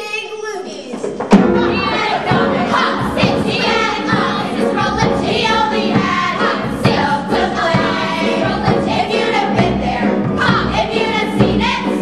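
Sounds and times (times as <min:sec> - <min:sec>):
chorus of girls singing: 0:01.4 - 0:12.0.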